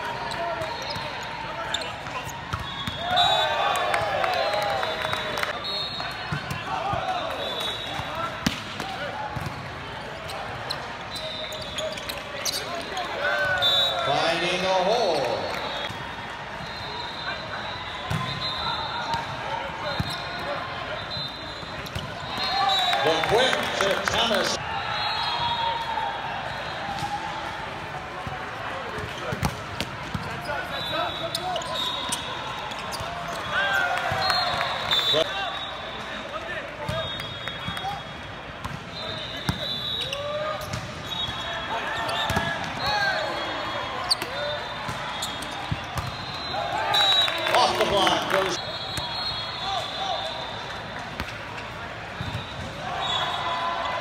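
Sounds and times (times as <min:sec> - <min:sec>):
sneakers squeaking on court: 0:00.2 - 0:03.1, 0:09.4 - 0:13.6, 0:18.0 - 0:20.5, 0:29.1 - 0:34.6, 0:38.6 - 0:43.2, 0:44.0 - 0:46.7
players calling out: 0:16.6 - 0:26.7.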